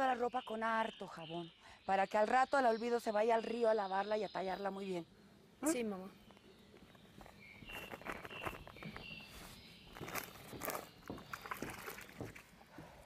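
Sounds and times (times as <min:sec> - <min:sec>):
footsteps on leafy dirt: 0:06.8 - 0:12.5
rustling laundry and plastic: 0:07.2 - 0:12.6.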